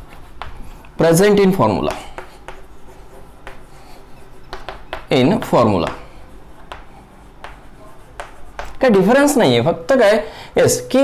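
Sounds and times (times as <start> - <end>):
chalk scratching on blackboard: 0.0 - 0.8, 1.7 - 9.4
chalk tapping on board: 0.0 - 0.8, 1.7 - 9.4.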